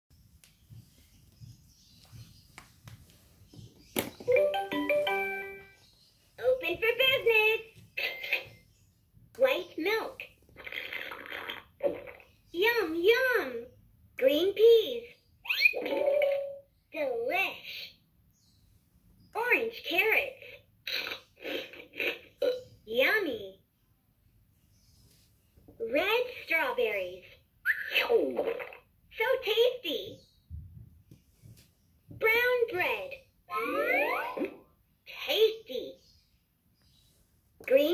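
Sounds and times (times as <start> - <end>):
raspy electronic sound effect: 4.3 - 5.8, 33.5 - 34.7.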